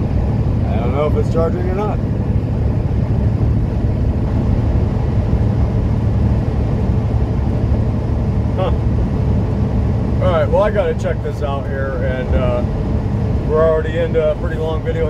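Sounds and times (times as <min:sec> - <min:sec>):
diesel engine drone: 0:00.0 - 0:15.0
road noise: 0:00.0 - 0:15.0.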